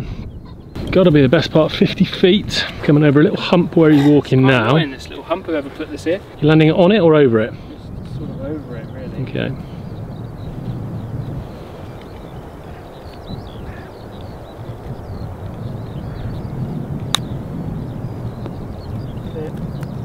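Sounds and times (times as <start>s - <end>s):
wind rumble on microphone: 0.0s - 20.0s
golf club striking ball: 17.0s - 17.4s.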